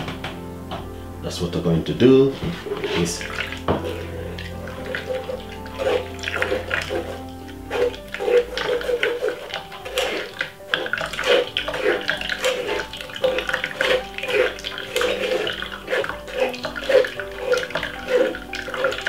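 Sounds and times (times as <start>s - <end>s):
scraping against metal sieve: 2.3s - 19.0s
juice trickling into plastic jug: 2.4s - 19.0s.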